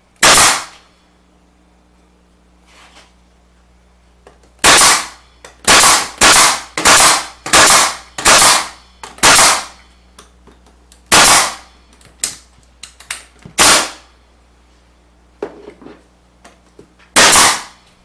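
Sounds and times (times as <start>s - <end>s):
nail gun firing: 0.2s - 0.8s, 4.6s - 9.8s, 11.1s - 11.6s, 13.6s - 14.0s, 17.1s - 17.8s.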